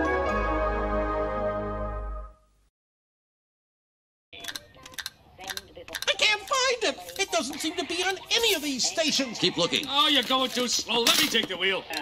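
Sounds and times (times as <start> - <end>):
snatches of television programmes: 4.4 - 12.0.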